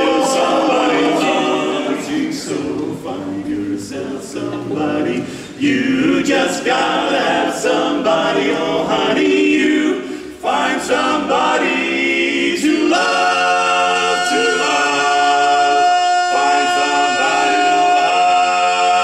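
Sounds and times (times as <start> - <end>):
male quartet singing a cappella: 0.0 - 19.0.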